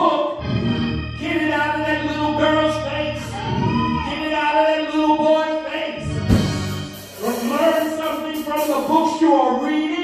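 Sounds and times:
low accompaniment: 5.6 - 9.2.

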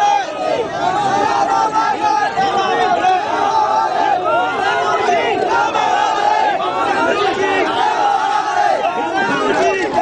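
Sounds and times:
large crowd shouting: 0.0 - 10.0.

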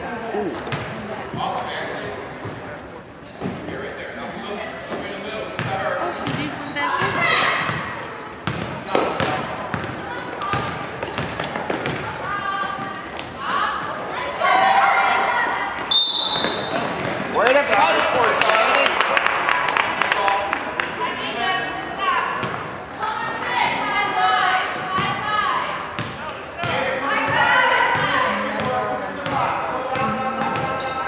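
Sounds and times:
sneakers squeaking: 2.4 - 4.0, 4.8 - 17.6, 25.8 - 31.0.

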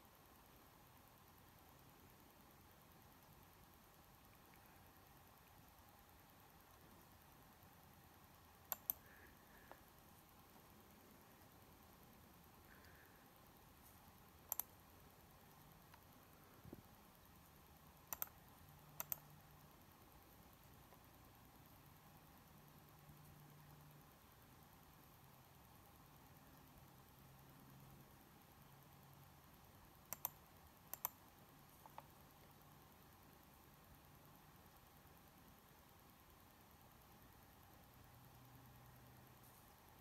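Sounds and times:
sharp clicks: 8.3 - 10.3, 14.3 - 14.8, 18.0 - 19.4, 30.0 - 32.2.

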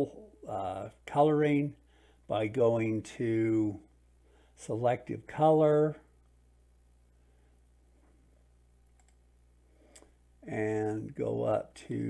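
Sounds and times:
faint low hum: 0.0 - 12.0
computer mouse clicks: 8.9 - 9.2.

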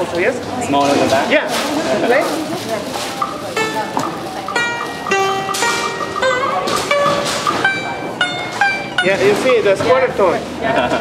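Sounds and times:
plucked string instrument: 2.6 - 10.4.

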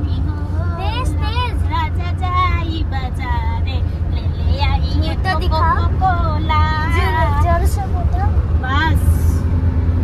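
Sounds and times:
car engine and tyres rumble: 0.0 - 10.0.

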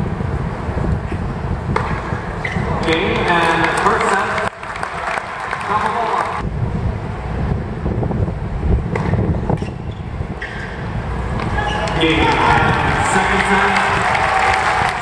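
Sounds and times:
racquet striking tennis ball: 1.7 - 4.3
spectators talking: 11.3 - 15.0.

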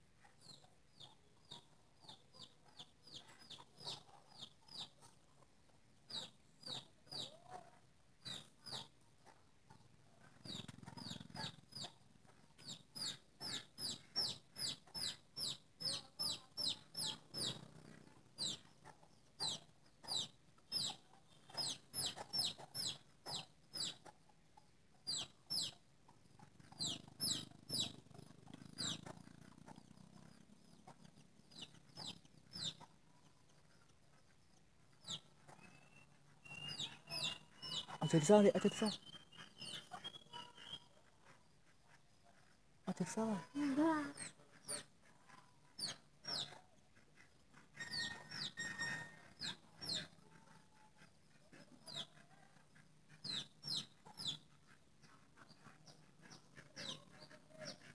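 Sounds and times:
bird calling: 35.1 - 41.0.

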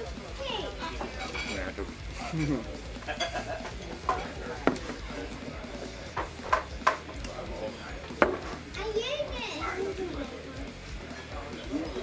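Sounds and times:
background music: 0.0 - 12.0
fork and glassware clinking on plates: 0.8 - 5.0.

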